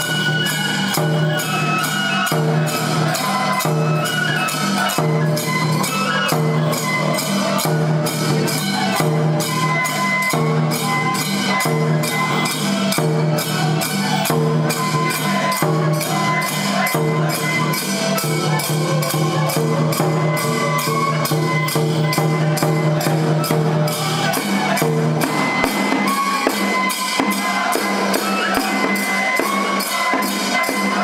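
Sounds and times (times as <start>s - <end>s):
bamboo flute melody: 0.0s - 31.0s
hand cymbals jangling: 0.0s - 31.0s
taiko drum beat: 16.8s - 31.0s.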